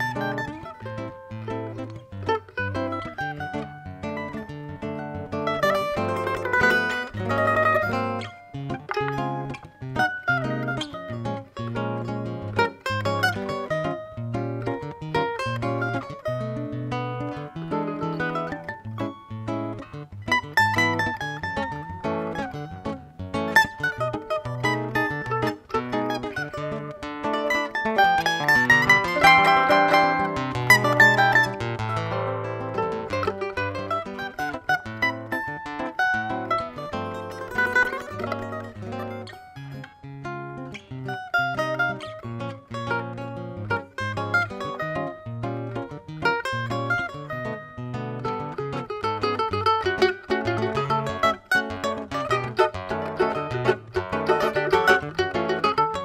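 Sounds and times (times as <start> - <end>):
classical guitar chords: 0.0 - 56.0
small plucked string instrument melody: 0.0 - 56.0.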